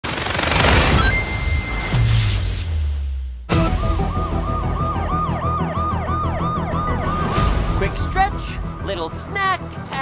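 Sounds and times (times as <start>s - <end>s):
siren yelping: 4.0s - 7.3s.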